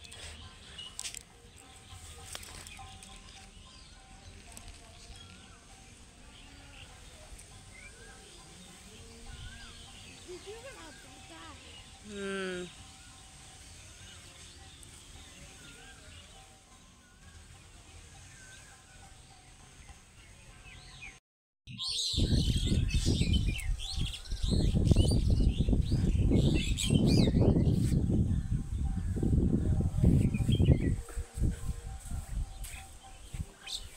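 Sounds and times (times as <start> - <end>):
birds chirping: 0.0 - 33.9
low rumble of wind: 22.2 - 33.5.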